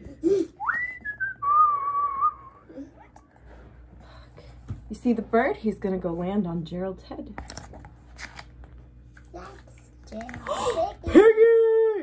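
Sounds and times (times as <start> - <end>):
person whistling: 0.6 - 2.8.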